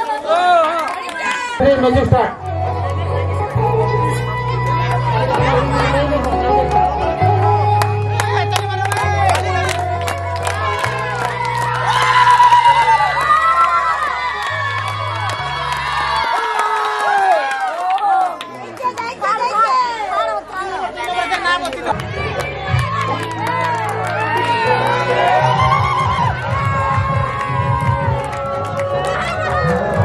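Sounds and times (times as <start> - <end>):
crowd shouting and cheering: 0.0 - 30.0
loud music with heavy bass: 1.6 - 16.1, 22.0 - 30.0.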